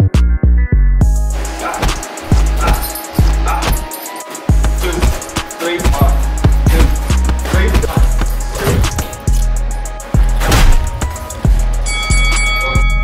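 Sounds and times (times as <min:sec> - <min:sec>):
background music with steady beat: 0:00.0 - 0:13.0
sustained high tones: 0:11.8 - 0:13.0.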